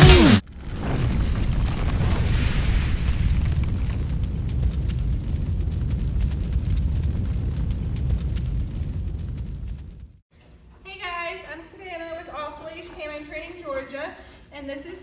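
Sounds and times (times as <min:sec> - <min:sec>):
deep rumble with crackling: 0:00.0 - 0:10.2.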